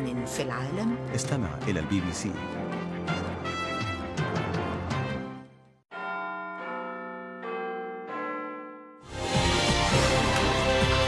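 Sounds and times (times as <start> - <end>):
music: 0.0 - 5.8, 9.1 - 11.0.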